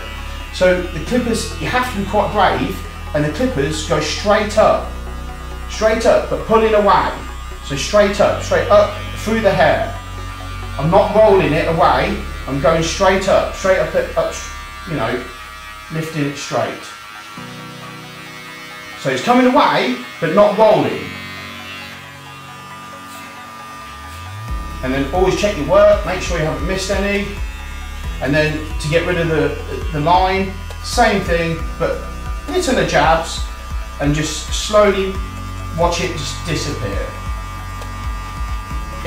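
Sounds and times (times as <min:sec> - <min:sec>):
electric hair clippers humming: 0:00.0 - 0:39.0
quiet background music: 0:00.0 - 0:39.0.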